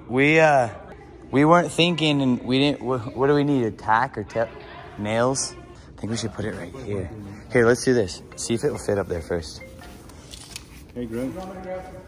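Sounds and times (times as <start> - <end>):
man talking: 1.4 - 9.7, 10.9 - 12.0.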